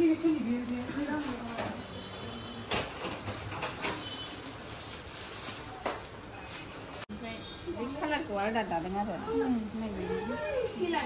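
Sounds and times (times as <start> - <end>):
plastic wrapping crinkling: 0.0 - 2.4, 3.2 - 7.1.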